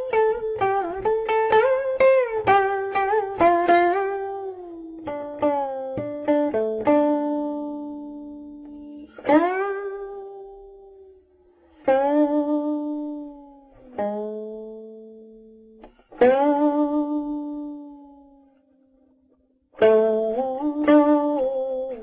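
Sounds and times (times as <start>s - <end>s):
guqin plucked notes sliding: 0.0s - 19.1s, 19.8s - 22.0s.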